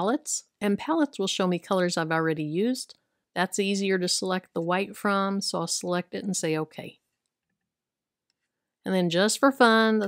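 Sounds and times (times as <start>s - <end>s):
woman speaking: 0.0s - 7.0s, 8.9s - 10.0s.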